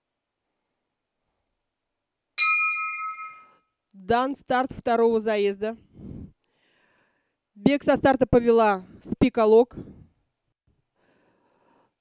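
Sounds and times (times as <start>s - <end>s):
bell strike ringing: 2.4s - 3.6s.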